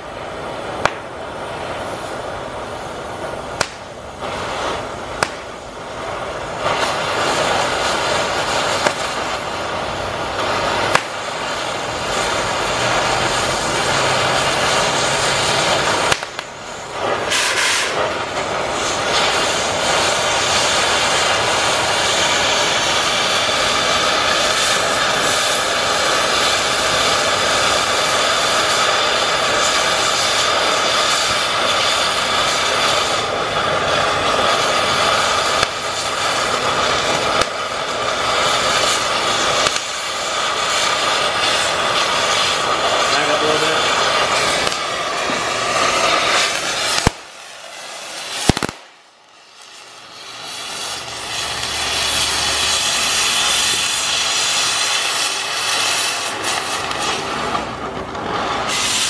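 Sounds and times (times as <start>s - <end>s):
cutting torch hissing: 0.0s - 59.0s.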